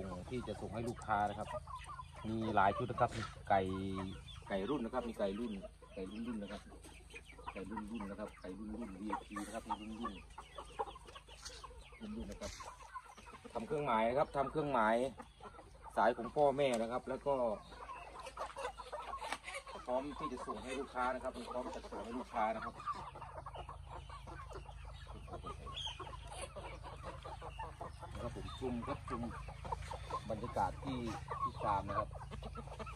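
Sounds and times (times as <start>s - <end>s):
young roosters clucking: 0.0s - 32.9s.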